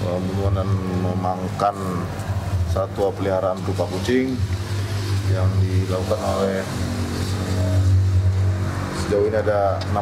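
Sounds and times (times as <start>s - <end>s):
low motor hum: 0.0s - 10.0s.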